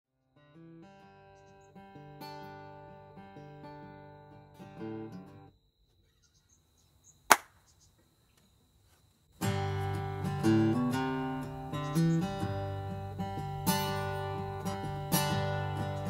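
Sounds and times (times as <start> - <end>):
acoustic guitar picking notes: 0.4 - 5.5, 9.4 - 16.0
sharp loud click: 7.3 - 7.5.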